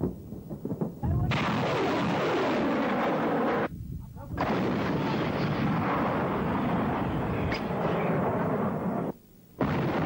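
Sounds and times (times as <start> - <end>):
field gun firing: 0.0 - 3.7, 9.6 - 10.0.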